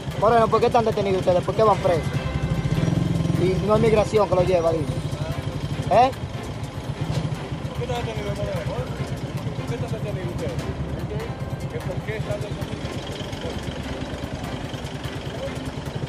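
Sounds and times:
indistinct voices talking: 0.0 - 16.0
truck engine idling: 0.0 - 16.0.

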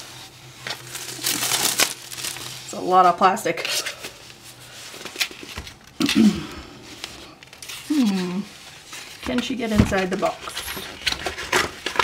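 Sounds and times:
plastic wrapping crinkling: 0.0 - 6.2, 6.8 - 12.0.

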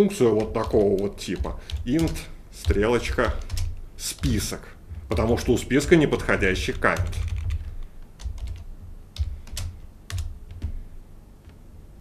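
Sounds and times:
computer keyboard keystrokes: 0.4 - 4.5, 5.1 - 10.8.

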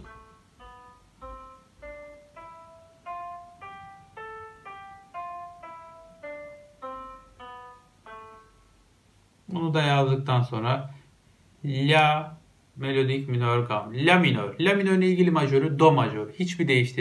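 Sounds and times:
sampled piano scale: 0.0 - 10.6.

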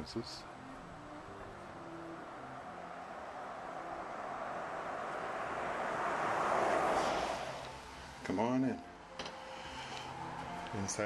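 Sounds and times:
vehicle passing by: 0.6 - 8.4.

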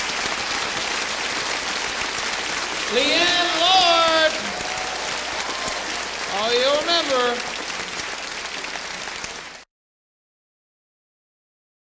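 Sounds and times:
audience applauding: 0.0 - 9.7
person calling out: 2.9 - 4.5.

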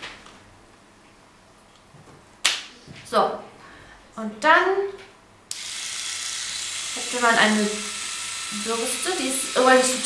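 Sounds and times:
small motor whirring: 5.5 - 10.0.

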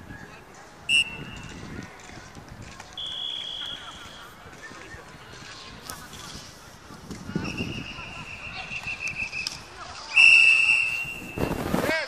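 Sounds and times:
referee's whistle blast: 0.9 - 1.4, 3.0 - 4.2.

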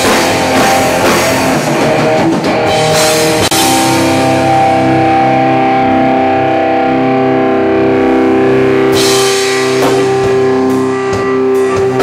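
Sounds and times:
distorted electric guitar chords: 0.0 - 12.0
drum kit: 0.0 - 12.0.

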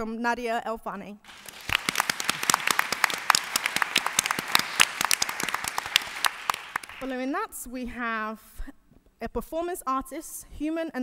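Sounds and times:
audience applauding: 1.3 - 7.2.

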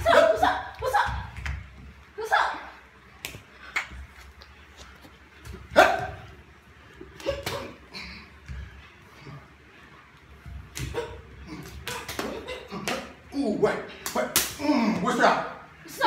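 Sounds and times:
slaps of hands and feet: 3.2 - 4.1, 7.2 - 7.8, 10.7 - 13.1, 14.0 - 14.6.

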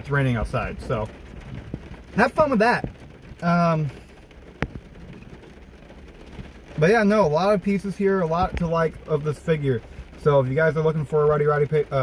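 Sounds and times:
man talking: 0.0 - 1.2, 2.1 - 4.0, 6.8 - 12.0
rain on car windshield and roof: 0.0 - 12.0.

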